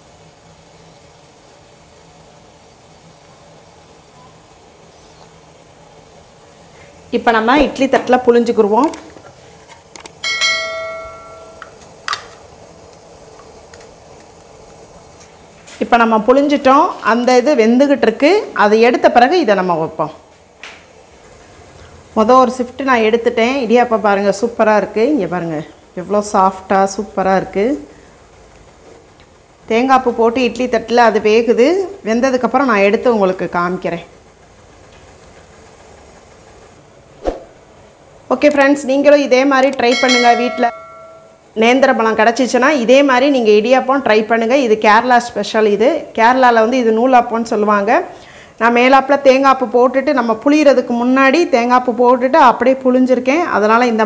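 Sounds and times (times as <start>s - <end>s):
steady background hiss: 0.0s - 54.0s.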